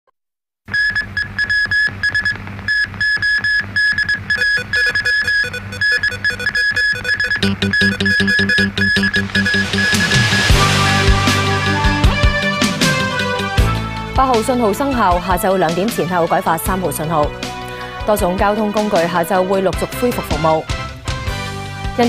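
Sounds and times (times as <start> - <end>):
electronic music with high beeps: 0.8 - 13.1
heavy bass layer: 7.4 - 18.9.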